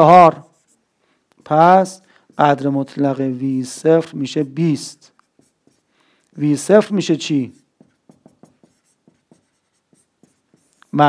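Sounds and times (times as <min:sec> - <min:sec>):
marker writing on a whiteboard: 0:00.0 - 0:11.0.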